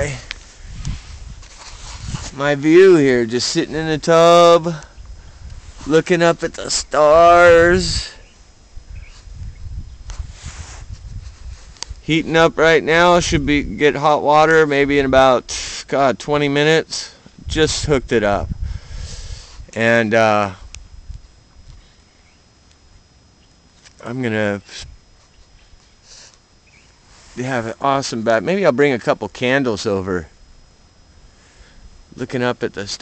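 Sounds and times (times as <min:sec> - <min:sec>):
wind rumble on microphone: 0:00.0 - 0:02.6, 0:05.0 - 0:13.9, 0:17.4 - 0:19.8, 0:20.6 - 0:21.8
soft hiss: 0:00.0 - 0:13.1, 0:16.7 - 0:33.0
faint outdoor background noise: 0:00.0 - 0:33.0
soft rustles: 0:00.2 - 0:02.4, 0:10.0 - 0:12.0, 0:26.8 - 0:27.7.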